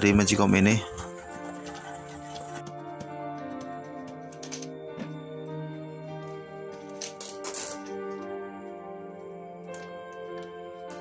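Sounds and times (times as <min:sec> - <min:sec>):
slow background music: 0:00.0 - 0:11.0
metal clicks and rattles: 0:01.5 - 0:04.8, 0:06.7 - 0:08.3.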